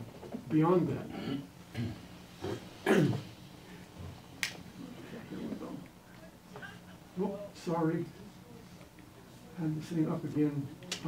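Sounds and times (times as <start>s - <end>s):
man clearing his throat: 1.1s - 3.3s.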